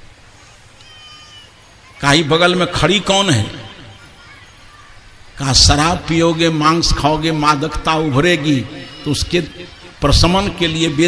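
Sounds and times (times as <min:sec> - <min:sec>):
recording hum and hiss: 0:00.0 - 0:11.0
faint high-pitched call: 0:00.4 - 0:02.0.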